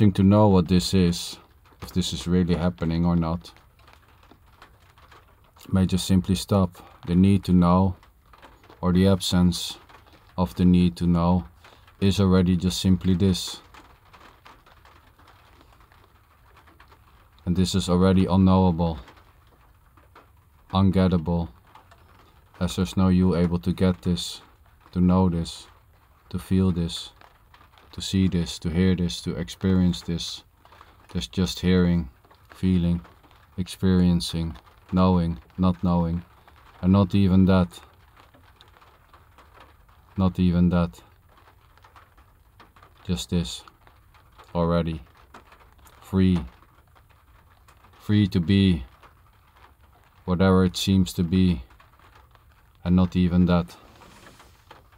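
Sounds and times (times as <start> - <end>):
raindrops ticking on windshield: 0.0 - 54.9.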